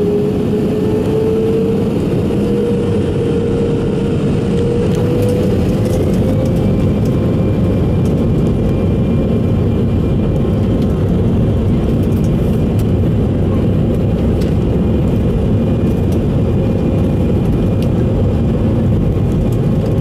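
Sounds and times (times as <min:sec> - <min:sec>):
airliner cabin rumble: 0:00.0 - 0:20.0.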